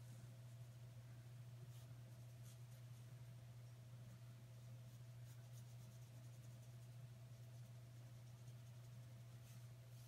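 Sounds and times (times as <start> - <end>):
steady low hum: 0.0 - 10.0
brush strokes on thin paper: 1.6 - 3.1, 4.8 - 10.0.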